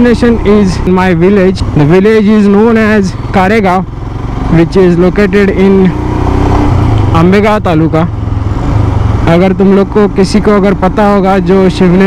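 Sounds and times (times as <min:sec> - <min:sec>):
person talking: 0:00.0 - 0:03.9, 0:04.5 - 0:06.0, 0:07.1 - 0:08.1, 0:09.2 - 0:12.0
motorcycle engine running: 0:00.0 - 0:12.0.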